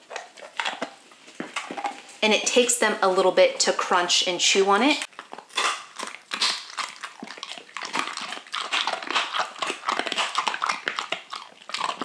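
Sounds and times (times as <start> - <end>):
dogs crunching hard treats: 0.0 - 2.7, 5.1 - 12.0.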